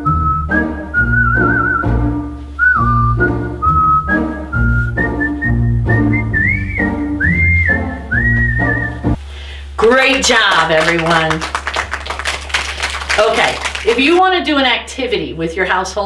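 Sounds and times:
rhythmic accompaniment with bass: 0.0 - 9.2
whistled melody: 0.0 - 9.2.

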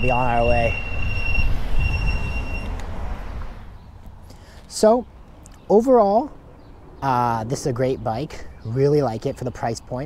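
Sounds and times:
high-pitched squeal: 0.0 - 2.8
wind rumble: 0.0 - 4.0
road noise: 0.0 - 10.0.

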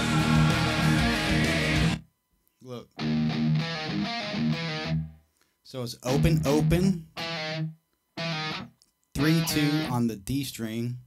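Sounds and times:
distorted electric guitar notes: 0.0 - 2.0, 3.0 - 5.2, 6.1 - 10.0.

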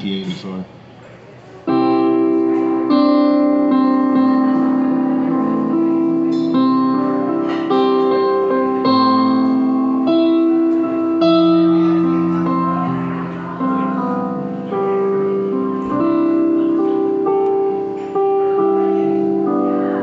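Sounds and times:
piano slow chords: 1.6 - 20.0.

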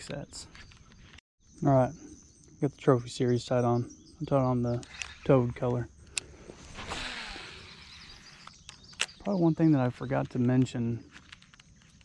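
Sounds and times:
reel spool whirring: 6.7 - 8.7.

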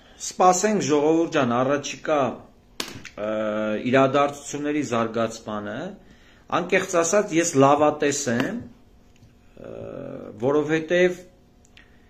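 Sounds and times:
man speaking: 0.2 - 2.5, 3.1 - 8.8, 9.6 - 11.4.

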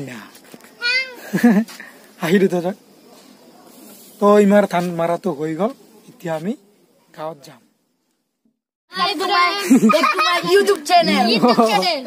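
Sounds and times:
child's voice: 0.8 - 1.3, 8.9 - 12.0.

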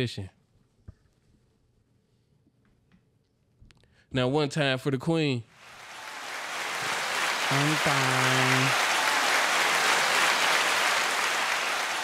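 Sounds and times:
crowd applause: 5.6 - 12.0.

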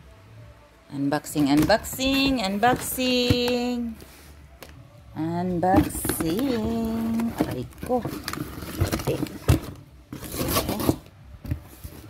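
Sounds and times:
cardboard scraping and rustling: 1.4 - 4.3, 5.6 - 12.0.

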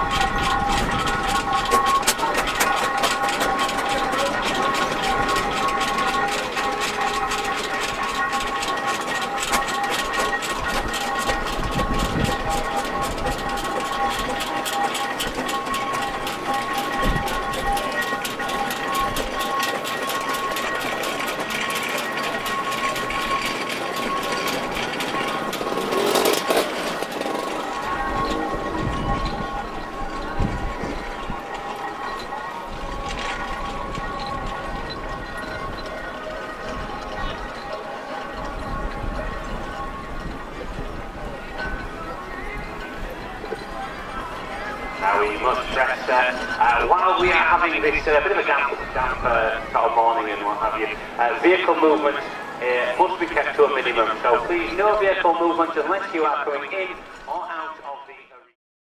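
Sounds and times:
fast ticking: 0.0 - 52.2
steam rush: 0.0 - 57.7
steady high tones: 0.0 - 58.3
steam engines running: 0.0 - 58.3.

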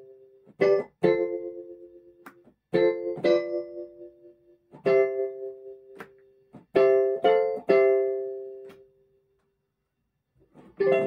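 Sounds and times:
electronic keyboard chords: 0.0 - 8.8, 10.8 - 11.0.

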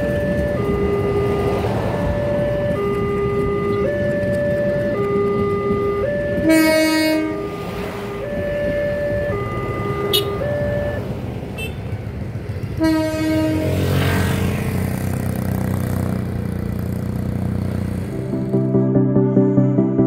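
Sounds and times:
passenger train passing: 0.0 - 20.0
train horn blast: 5.4 - 8.4, 9.8 - 10.5, 12.8 - 14.2
music: 18.1 - 20.0.

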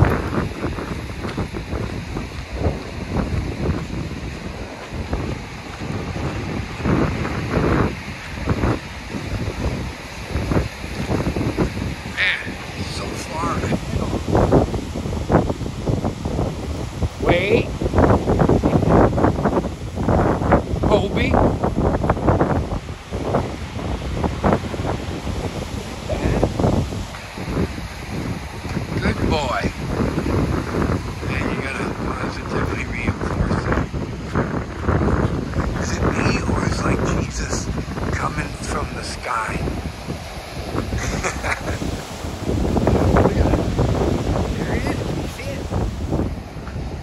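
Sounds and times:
beach surf: 0.0 - 47.0
wind buffeting microphone: 0.0 - 47.0.

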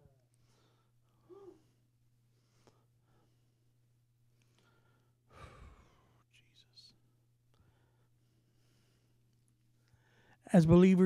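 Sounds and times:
faint whispering: 6.1 - 7.2.

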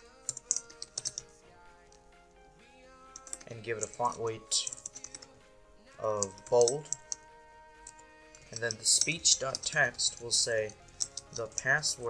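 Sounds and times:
soft background music: 0.0 - 12.0
computer keyboard typing: 0.3 - 1.2, 3.2 - 5.3.

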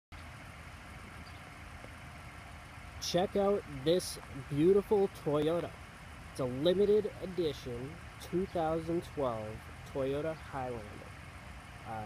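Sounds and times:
vehicle engine idling: 0.1 - 12.0.

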